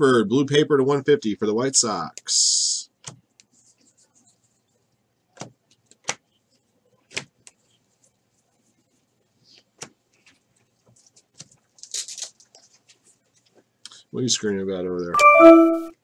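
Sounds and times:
cards rustling: 9.5s - 13.6s.

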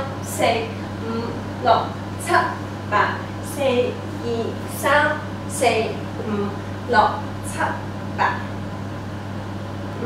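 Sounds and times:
woman counting aloud: 0.0s - 8.6s
steady low hum: 0.0s - 10.0s.

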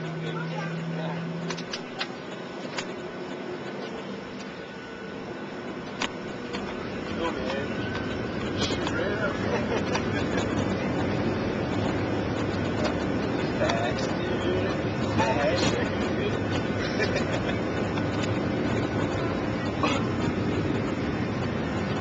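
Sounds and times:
jet engines droning: 0.0s - 22.0s.

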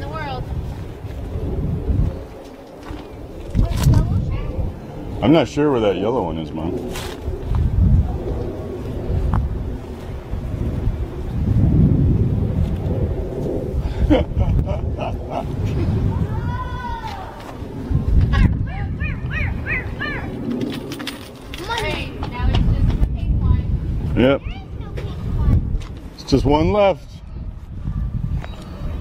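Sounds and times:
wind rumble on microphone: 0.0s - 29.0s.

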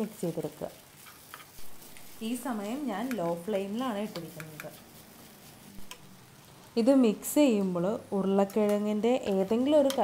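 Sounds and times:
spatula stirring food in pan: 0.0s - 6.8s, 7.5s - 10.0s
spatula tapping pan: 2.9s - 4.8s, 8.4s - 10.0s.

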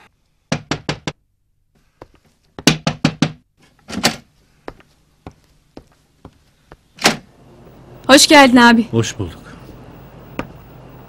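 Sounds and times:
knocking on a wooden door: 0.5s - 1.2s, 2.6s - 3.5s.

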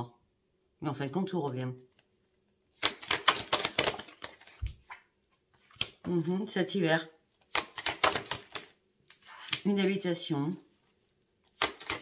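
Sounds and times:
cards being shuffled: 2.8s - 6.2s, 7.4s - 9.8s, 11.5s - 12.0s.

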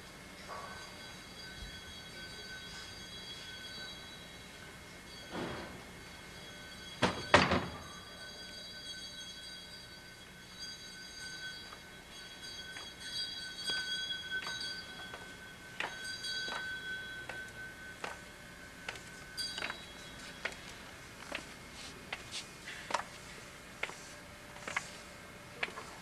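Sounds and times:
faint steady high tone: 0.0s - 21.0s.

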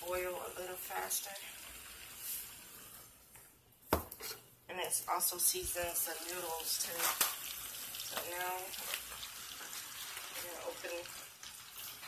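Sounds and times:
salt pouring hiss: 1.6s - 3.1s.

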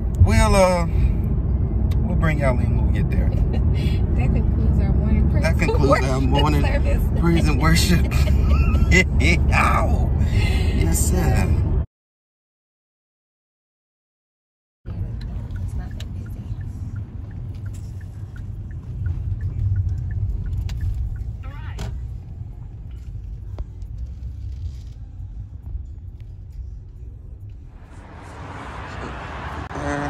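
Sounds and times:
car rumble from inside: 0.0s - 11.8s, 14.9s - 30.0s.

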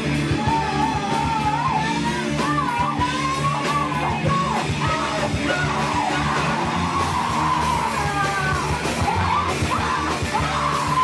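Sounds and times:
drums: 0.0s - 11.0s
electric guitars: 0.0s - 11.0s
woman singing: 0.0s - 11.0s.

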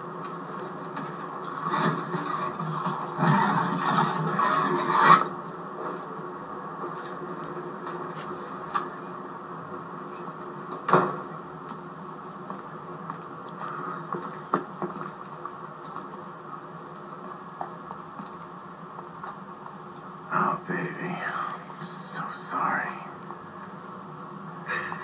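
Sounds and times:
television background hum: 0.0s - 25.0s.

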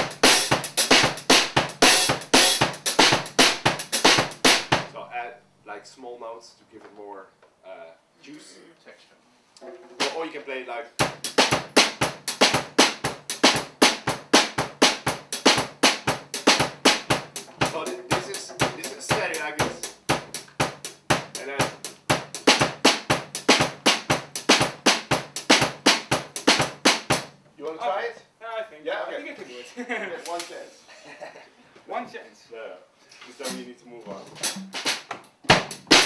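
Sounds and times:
drum kit groove: 0.0s - 5.1s, 9.6s - 27.6s, 33.4s - 36.0s.

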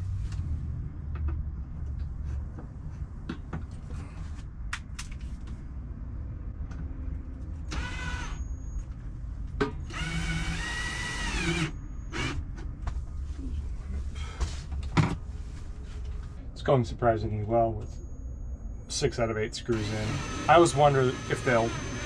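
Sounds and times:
drill-driver whirring: 7.7s - 8.4s, 9.9s - 12.4s, 19.6s - 22.0s.

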